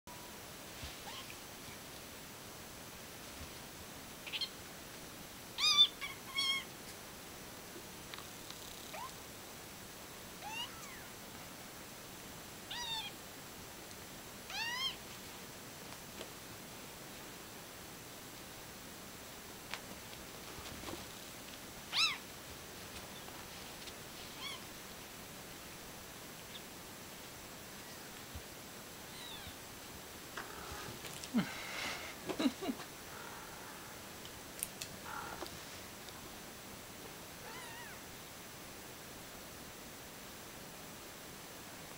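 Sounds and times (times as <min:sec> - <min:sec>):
soft thumps of cats tumbling: 0:19.7 - 0:21.3
cat mewing: 0:21.9 - 0:22.2, 0:37.4 - 0:38.0.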